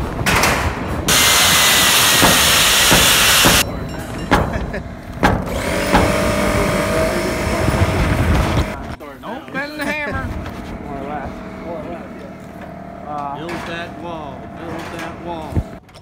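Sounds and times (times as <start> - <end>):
sharp knocks: 0.2 - 3.6, 4.3 - 6.5
loud even hiss: 1.1 - 3.6.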